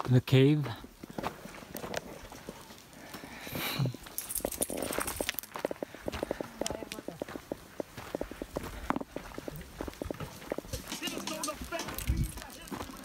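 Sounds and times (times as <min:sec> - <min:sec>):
footsteps on dirt trail: 0:00.0 - 0:13.0.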